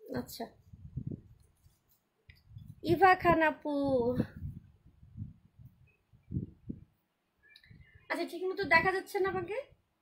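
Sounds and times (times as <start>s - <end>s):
woman speaking: 2.8s - 4.4s, 8.1s - 9.8s
faint clicks: 7.5s - 7.8s.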